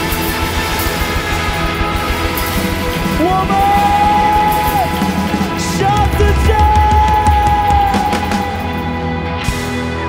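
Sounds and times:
live band with drums and guitars: 0.0 - 10.0.

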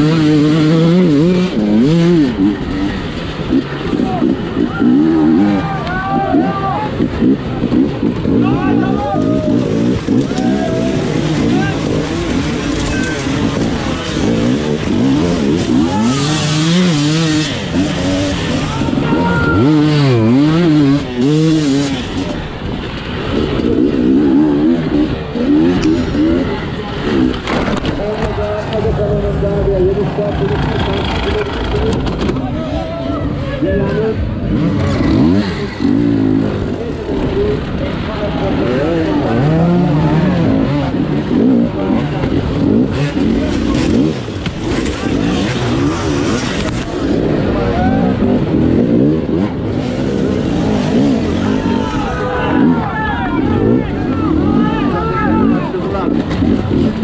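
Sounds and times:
motorcycle engine revving: 0.0 - 57.0.

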